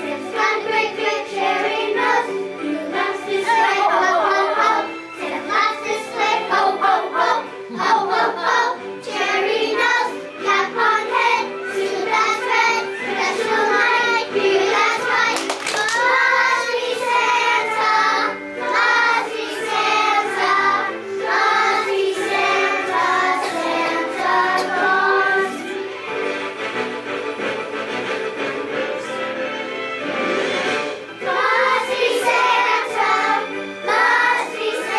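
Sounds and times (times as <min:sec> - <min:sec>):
children singing in unison: 0:00.0 - 0:25.8, 0:31.2 - 0:34.9
instrumental music: 0:00.0 - 0:34.9.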